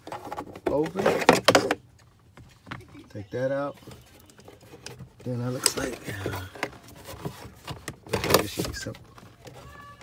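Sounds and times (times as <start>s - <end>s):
plastic glove box scraping: 0.0s - 1.8s, 3.5s - 10.0s.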